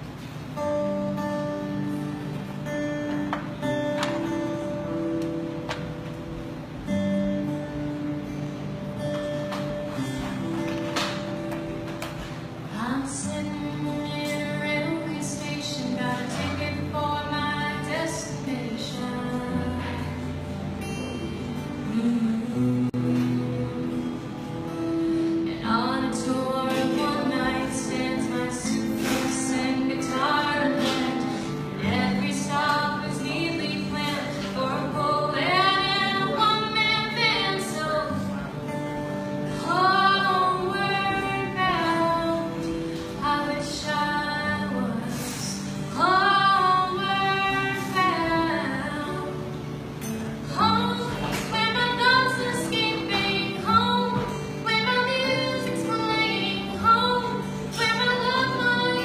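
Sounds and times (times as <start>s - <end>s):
acoustic guitars playing: 0.0s - 59.0s
woman singing: 12.7s - 59.0s.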